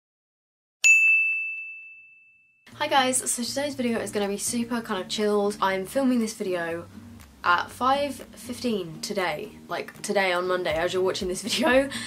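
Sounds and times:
bright bell-like ding: 0:00.8 - 0:02.6.

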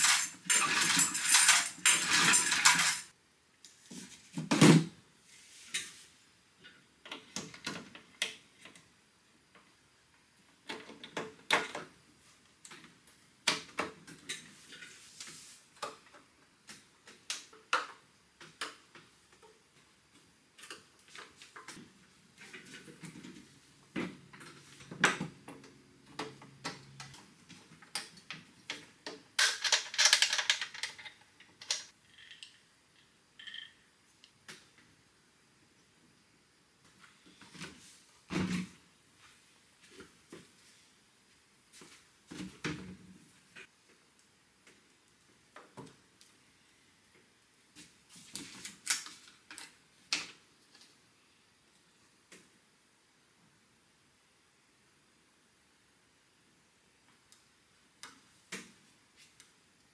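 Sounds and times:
clattering scrape: 0:00.0 - 0:03.1.

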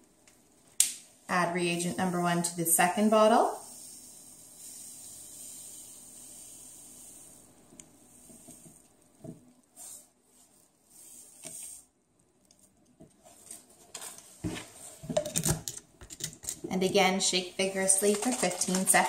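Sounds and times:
powder pouring hiss: 0:02.8 - 0:11.8
paper packet rustling: 0:17.6 - 0:19.0.

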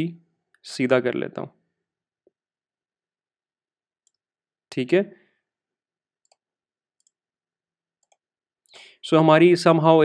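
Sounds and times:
computer mouse clicks: 0:06.2 - 0:07.2, 0:08.0 - 0:08.3.

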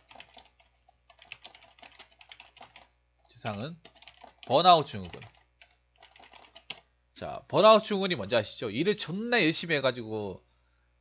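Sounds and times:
computer keyboard typing: 0:00.0 - 0:06.9.

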